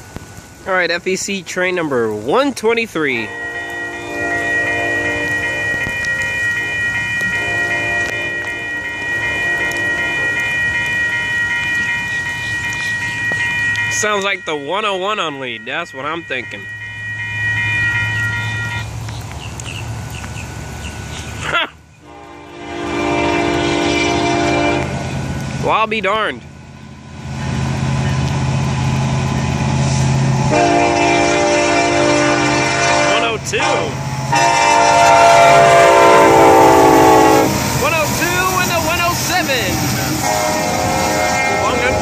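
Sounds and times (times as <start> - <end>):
low locomotive rumble: 3.0 - 42.0
locomotive horn: 3.2 - 18.9, 22.0 - 25.1, 30.4 - 39.0, 40.1 - 42.0
crossing bell ringing: 3.2 - 19.0, 30.4 - 42.0.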